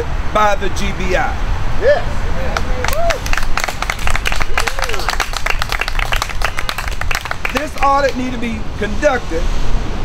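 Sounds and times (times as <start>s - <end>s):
crowd applauding: 2.6s - 8.2s.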